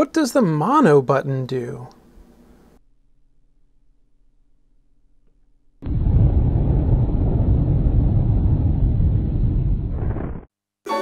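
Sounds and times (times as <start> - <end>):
deep explosion rumble: 5.8 - 10.5.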